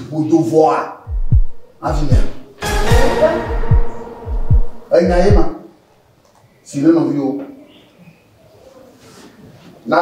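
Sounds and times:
deep heartbeat thumps: 1.1s - 5.6s
person speaking: 1.8s - 5.6s.

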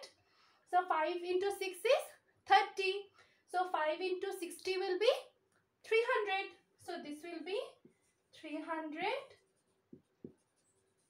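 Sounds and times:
marker scratching on whiteboard: 7.8s - 11.0s.

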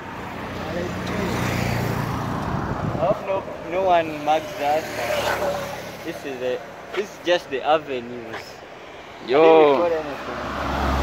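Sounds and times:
vehicle passing with tyre noise: 0.0s - 11.0s.

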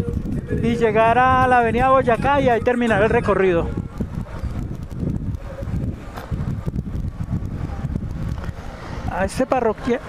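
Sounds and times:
motorcycle engine running: 0.0s - 8.8s
wind on microphone: 0.0s - 10.0s.

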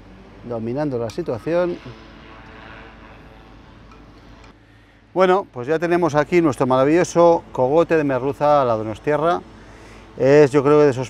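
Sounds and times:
distant engine drone: 0.0s - 11.0s.

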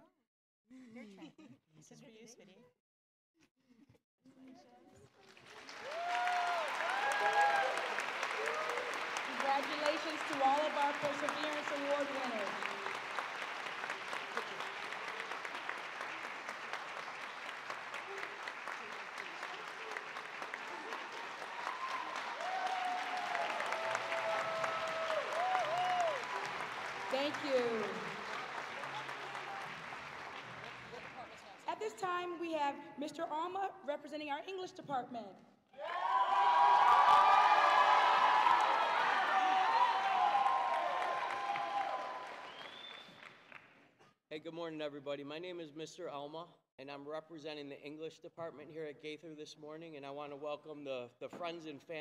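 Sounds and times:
audience applause: 5.2s - 31.7s, 35.8s - 43.7s.

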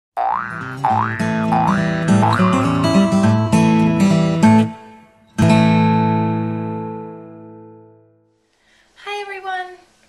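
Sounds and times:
springy boing sound effect: 0.2s - 3.3s
short musical notes: 0.8s - 5.1s.

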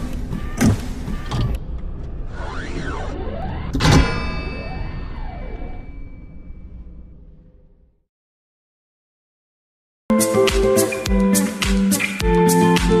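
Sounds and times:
loud metallic hit ringing: 3.8s - 7.0s.

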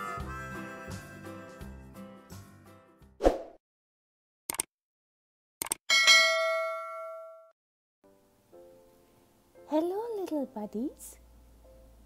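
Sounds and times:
bell ding: 5.9s - 7.5s.

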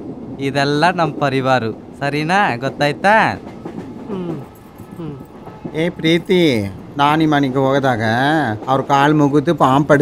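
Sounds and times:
person calling out: 4.1s - 5.3s
quiet speech: 4.1s - 6.8s.

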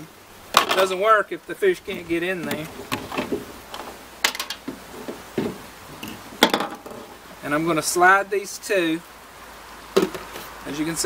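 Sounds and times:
plastic containers handled: 1.8s - 7.1s.

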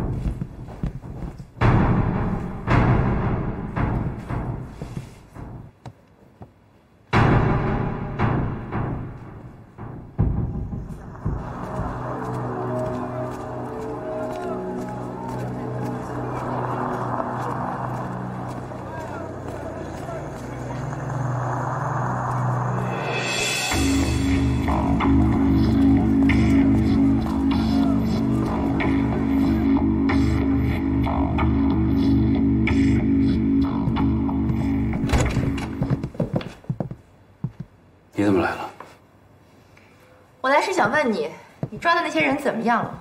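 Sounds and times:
hard-soled footsteps on hard floor: 0.0s - 3.0s, 3.8s - 6.6s, 9.2s - 16.4s, 33.9s - 37.8s, 40.7s - 42.3s
indistinct chatter: 11.4s - 24.2s.

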